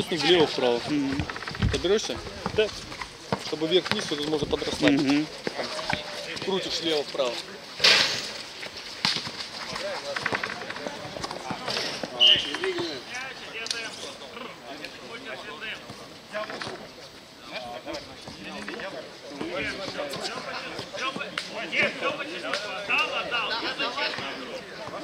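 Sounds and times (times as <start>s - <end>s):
players calling out and talking: 0.0s - 25.0s.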